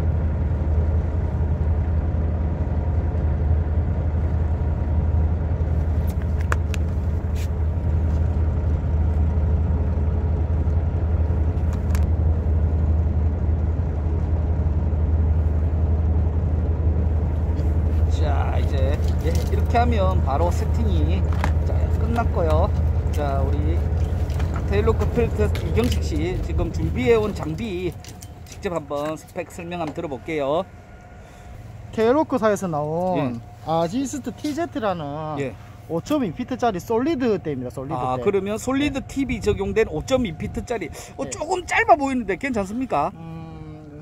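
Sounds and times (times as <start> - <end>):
boat engine idling: 0.0 - 44.0.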